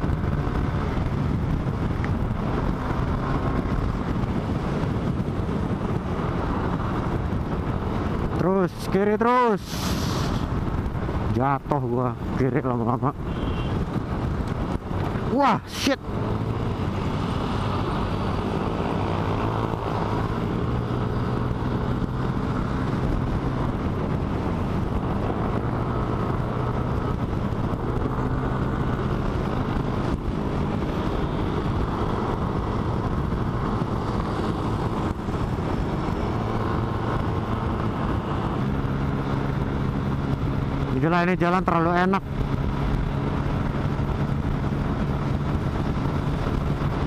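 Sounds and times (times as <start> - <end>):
wind noise on microphone: 0.0 - 47.0.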